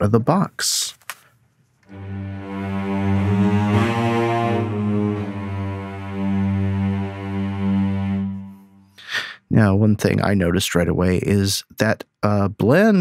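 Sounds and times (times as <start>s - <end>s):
cello section sustained low notes: 1.9s - 8.9s.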